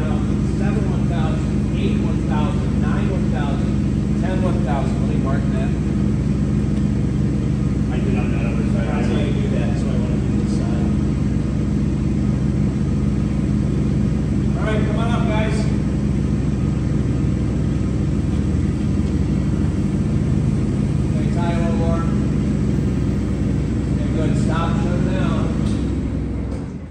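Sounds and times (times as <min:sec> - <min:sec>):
forklift engine idling: 0:00.0 - 0:26.9.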